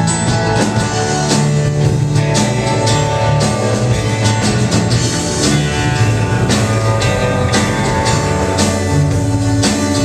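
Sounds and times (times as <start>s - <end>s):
drum kit: 0.0s - 10.0s
electric and acoustic guitars: 0.0s - 10.0s
upright bass: 0.0s - 10.0s.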